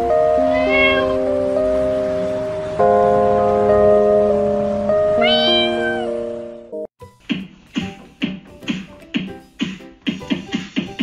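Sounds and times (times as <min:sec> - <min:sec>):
background music sustained notes: 0:00.0 - 0:06.9
cat meowing: 0:00.4 - 0:01.3, 0:05.1 - 0:06.2.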